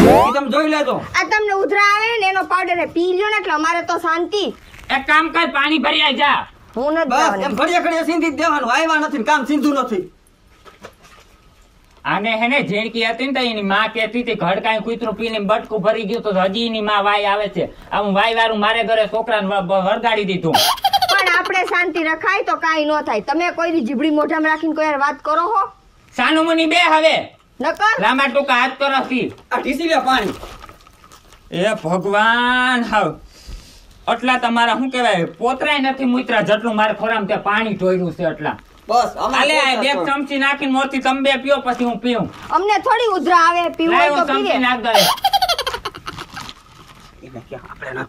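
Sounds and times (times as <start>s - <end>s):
lively talk: 0.0s - 10.1s, 12.0s - 30.5s, 34.1s - 46.3s
woman giggling: 20.6s - 21.8s, 45.0s - 46.4s
high-pitched laugh: 20.6s - 21.9s, 44.9s - 46.5s.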